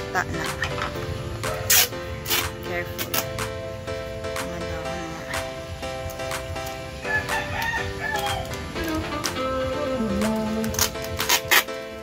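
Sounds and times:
background music: 0.0s - 12.0s
rooster crowing: 7.0s - 8.6s.

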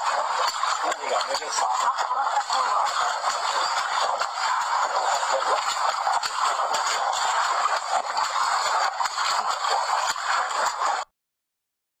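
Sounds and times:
water splashing: 0.0s - 11.1s.

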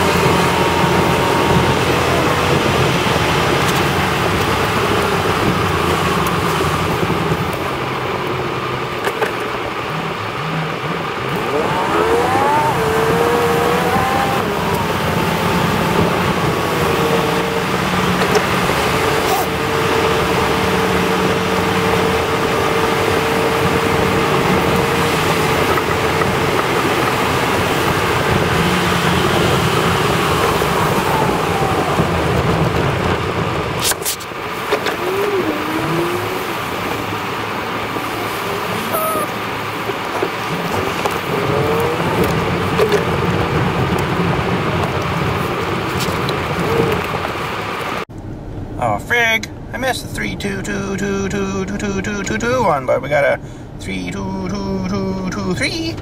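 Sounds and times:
rising pitch: 0.0s - 6.1s, 10.0s - 33.2s, 37.9s - 39.6s
engine drone: 0.0s - 52.3s
tyre hiss on wet road: 33.8s - 37.1s
steady tone: 38.7s - 39.4s.

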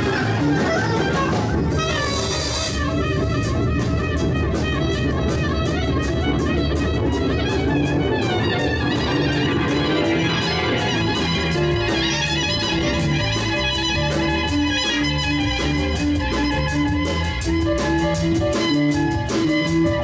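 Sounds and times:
bass guitar: 0.0s - 20.0s
drum kit with cymbal beat: 0.0s - 20.0s
electric guitar: 0.0s - 20.0s
keyboard: 0.0s - 20.0s.

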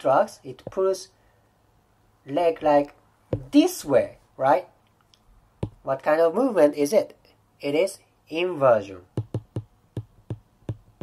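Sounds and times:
stylus tapping on glass screen: 5.6s - 5.8s, 9.2s - 11.0s.

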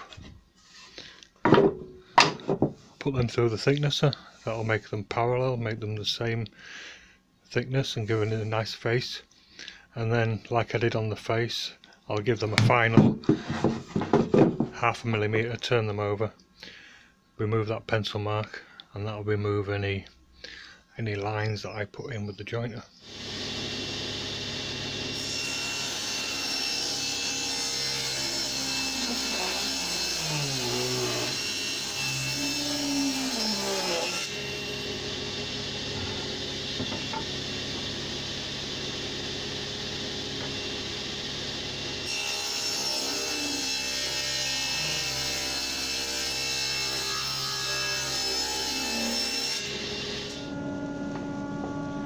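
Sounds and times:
table saw ripping wood: 12.6s - 14.8s, 23.0s - 50.6s.

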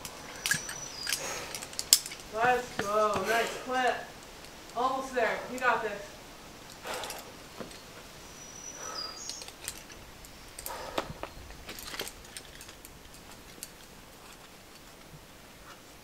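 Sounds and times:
carabiners clinking: 0.0s - 3.3s, 6.6s - 7.9s, 8.8s - 15.0s
outdoor hiss: 0.0s - 16.0s
high bird call: 8.3s - 9.6s.

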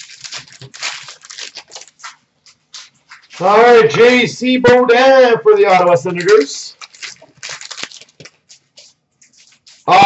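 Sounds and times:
trading cards rustling: 0.0s - 3.5s, 5.7s - 10.0s
man calling out: 3.4s - 6.7s.

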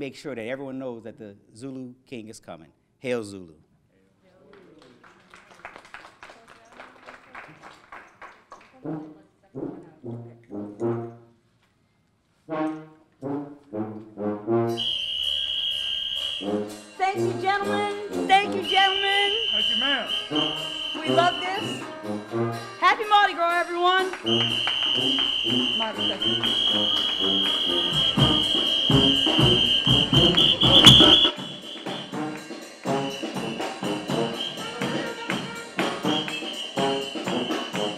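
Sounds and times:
brass band playing: 8.8s - 11.3s, 12.5s - 37.9s
high shrill held note: 14.8s - 32.7s
tambourine-like percussion: 14.8s - 37.9s
steady high-pitched tone: 15.0s - 22.0s
drums: 24.2s - 37.9s
short low brass note: 29.2s - 32.3s.

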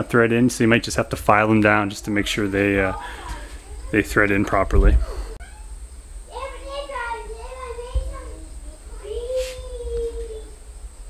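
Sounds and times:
brief hiss: 9.3s - 9.7s.

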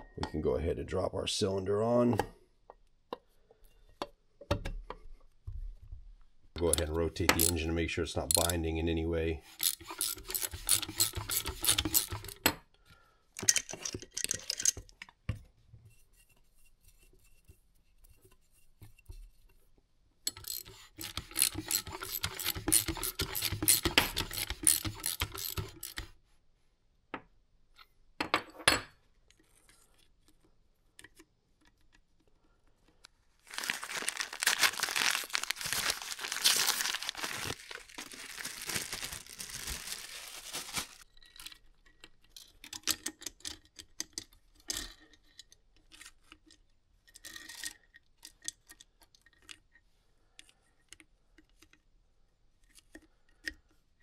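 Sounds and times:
socket ratchet clicking: 6.8s - 7.6s, 9.5s - 12.4s, 20.3s - 26.1s
paper bag rustling: 33.5s - 41.0s.

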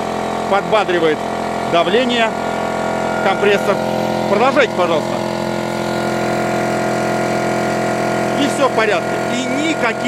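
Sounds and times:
air compressor running: 0.0s - 10.0s.

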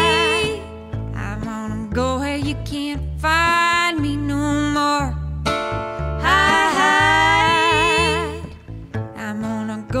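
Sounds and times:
woman singing country song: 0.0s - 5.4s, 6.2s - 10.0s
upright bass: 0.0s - 10.0s.

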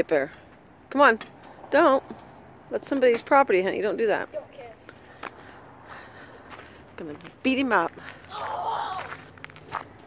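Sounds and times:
faint footsteps on asphalt: 0.1s - 10.0s.

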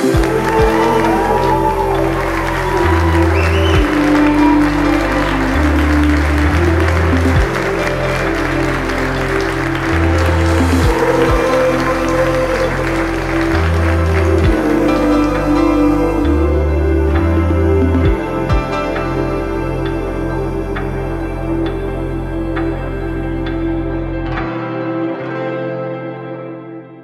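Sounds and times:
crowd applauding: 0.0s - 18.7s
soundtrack music with bass notes: 0.0s - 27.0s.

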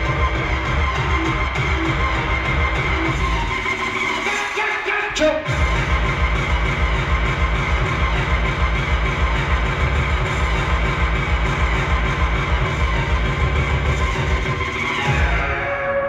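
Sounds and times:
electronic dance music: 0.0s - 16.0s.

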